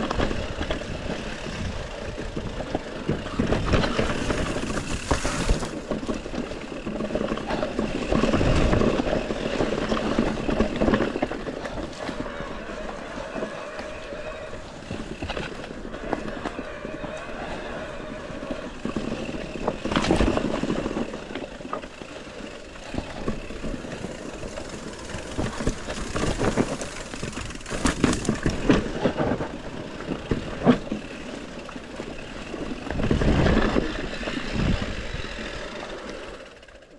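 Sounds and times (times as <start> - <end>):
bike rattling and knocking: 0.0 - 36.9
bike tyres rolling on trail: 0.0 - 36.9.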